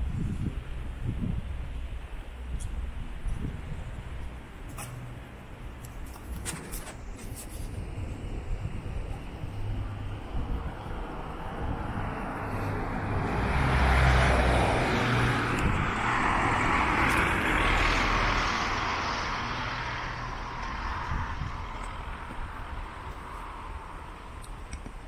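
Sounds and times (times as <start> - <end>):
road traffic passing: 0.0 - 25.0.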